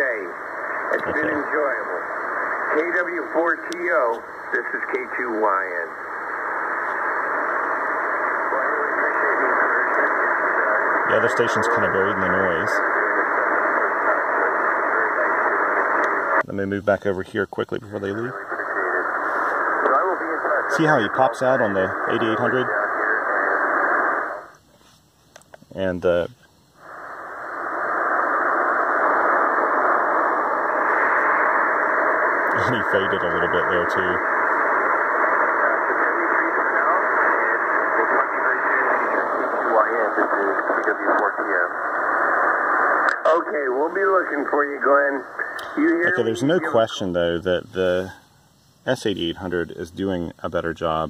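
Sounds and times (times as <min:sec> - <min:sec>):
faint radio voice: 0:00.0 - 0:06.0, 0:07.2 - 0:24.4, 0:32.4 - 0:48.2
radio band noise: 0:00.0 - 0:51.0.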